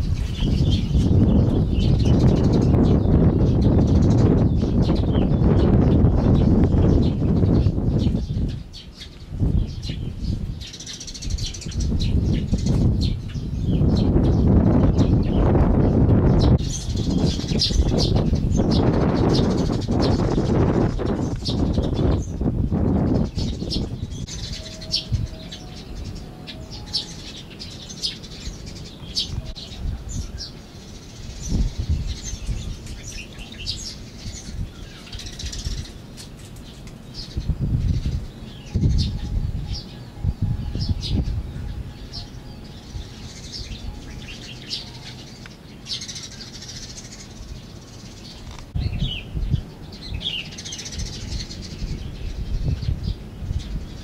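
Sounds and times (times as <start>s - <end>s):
low rumbles on microphone: 0.0s - 26.3s, 37.3s - 42.1s, 46.7s - 54.0s
small birds chirping: 0.0s - 54.0s.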